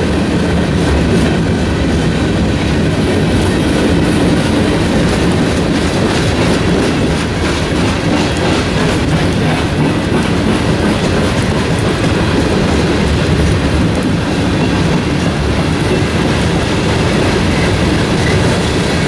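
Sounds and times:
freight train rumbling: 0:00.0 - 0:19.0
wheels clacking over rail joints: 0:00.0 - 0:19.0.

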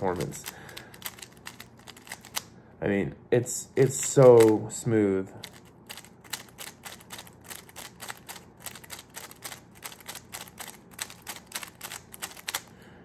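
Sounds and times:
plastic puzzle cube clicks: 0:00.1 - 0:02.5, 0:05.4 - 0:12.7.

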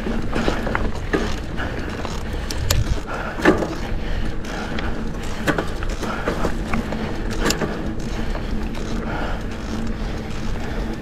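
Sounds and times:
bike chain rattling and ticking: 0:00.0 - 0:11.0
tyre and wind rumble: 0:00.0 - 0:11.0
sharp clicks: 0:02.0 - 0:03.6.

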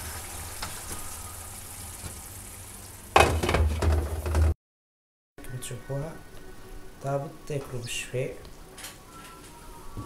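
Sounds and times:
sauce sizzling in a frying pan: 0:00.0 - 0:03.1.

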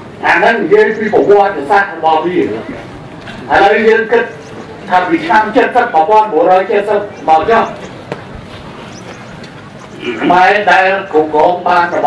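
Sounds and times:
steady low hiss: 0:00.0 - 0:12.0
man speaking into microphone: 0:00.2 - 0:02.8, 0:03.5 - 0:07.9, 0:10.0 - 0:12.0.

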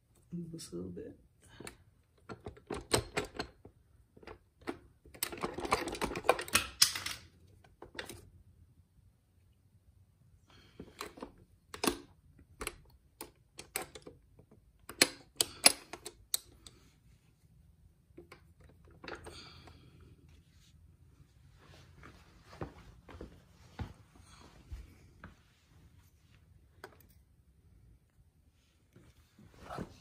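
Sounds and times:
metal clicks and knocks: 0:01.6 - 0:08.2, 0:11.0 - 0:16.8.

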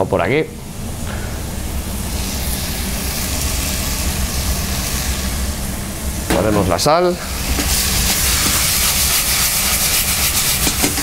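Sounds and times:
vegetables sizzling in a pan: 0:01.0 - 0:11.0.

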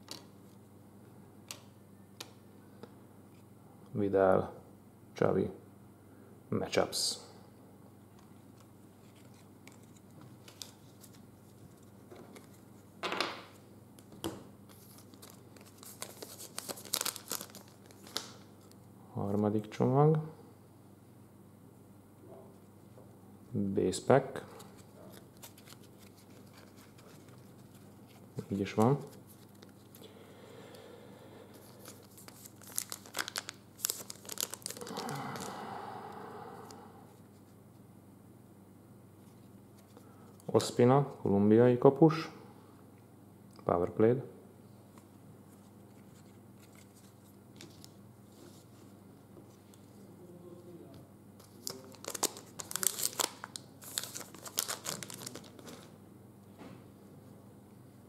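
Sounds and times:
soft handling sounds: 0:08.0 - 0:19.4, 0:24.4 - 0:30.0, 0:44.9 - 0:55.9
foil wrapper tearing and crinkling: 0:14.8 - 0:18.4, 0:31.8 - 0:35.6, 0:51.5 - 0:55.9.

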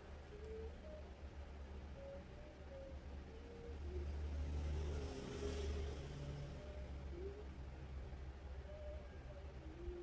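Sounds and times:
low steady hum: 0:00.0 - 0:05.0.

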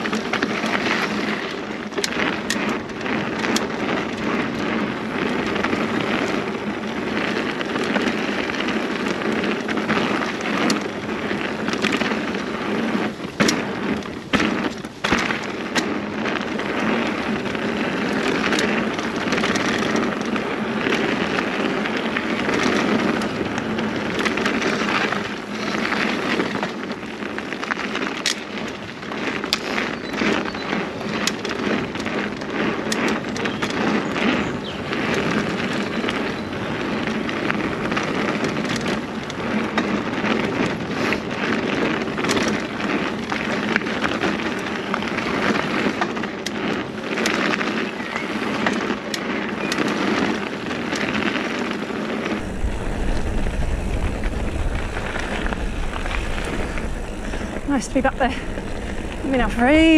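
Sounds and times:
bike clicks and rattles: 0:00.0 - 0:59.9
bike tyres rolling over dirt: 0:00.0 - 0:59.9.

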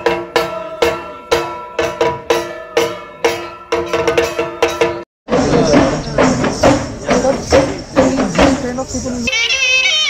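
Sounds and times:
rhythmic percussive strikes: 0:00.0 - 0:09.3.

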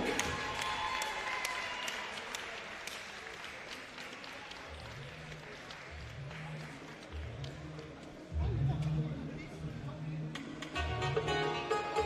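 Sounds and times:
audience applause: 0:00.0 - 0:07.9.

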